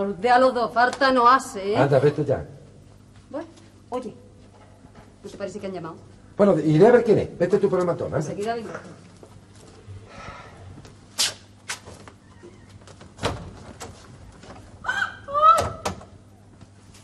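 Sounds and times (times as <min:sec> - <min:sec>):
door opening and shutting: 0:11.7 - 0:14.7
woman crying out startled: 0:14.8 - 0:15.9.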